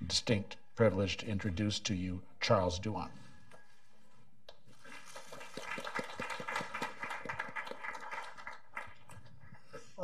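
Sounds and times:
audience applause: 4.8 - 9.2.

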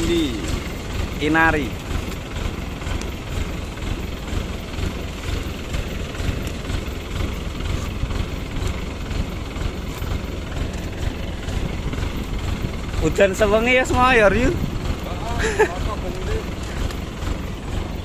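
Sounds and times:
combine harvester engine running: 0.0 - 18.0.

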